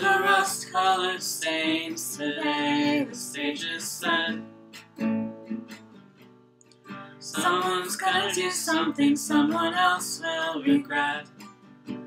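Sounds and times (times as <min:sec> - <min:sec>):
acoustic guitar strumming: 0:00.0 - 0:12.0.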